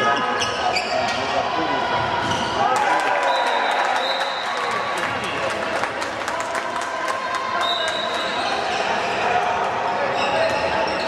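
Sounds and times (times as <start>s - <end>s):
voices in a sports hall: 0.0s - 11.0s.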